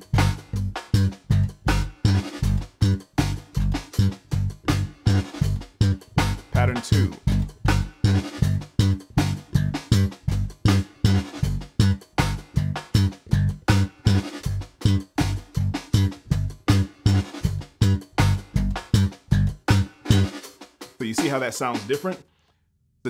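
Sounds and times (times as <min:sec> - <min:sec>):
slap bass guitar funk groove: 0:00.0 - 0:20.4.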